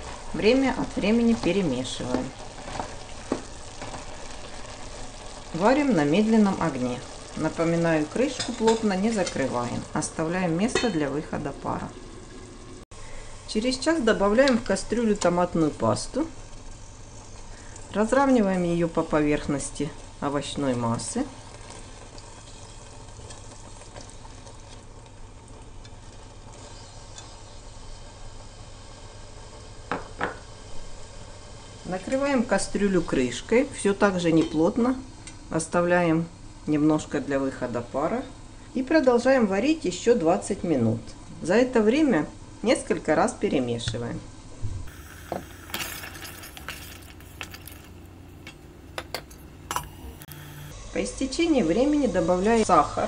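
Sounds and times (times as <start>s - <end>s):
vegetables simmering in a pot: 0.0s - 53.0s.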